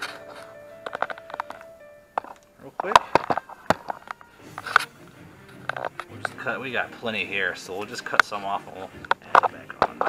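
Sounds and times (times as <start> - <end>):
sharp clicks and light knocks: 0.0 - 4.9, 7.8 - 10.0.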